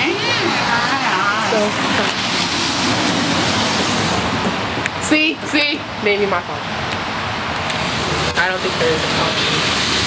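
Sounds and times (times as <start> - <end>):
heavy rain hissing: 7.8 - 10.0.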